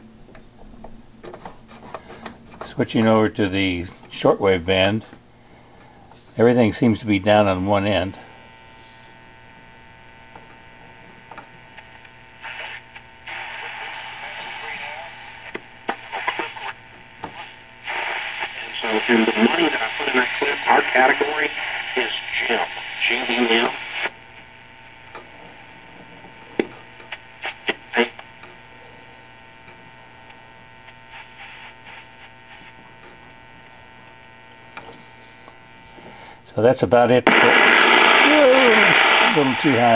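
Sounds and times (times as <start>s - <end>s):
radio low hum: 1.3s - 39.9s
hissing radio static: 1.7s - 5.2s, 6.1s - 39.9s
sharp crackles: 37.3s - 39.9s.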